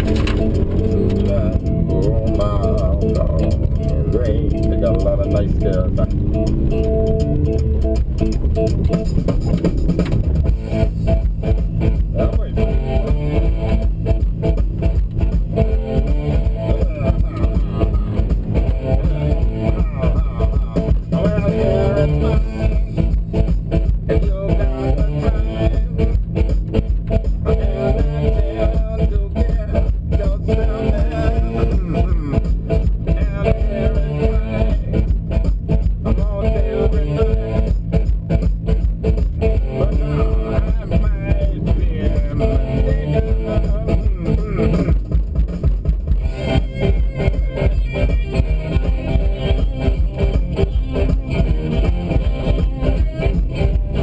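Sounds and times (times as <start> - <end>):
song with steady beat: 0.0 - 54.0.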